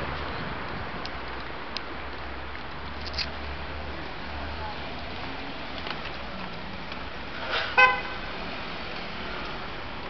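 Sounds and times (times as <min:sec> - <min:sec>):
city street traffic: 0:00.0 - 0:10.0
short car horn beep: 0:07.8 - 0:08.2.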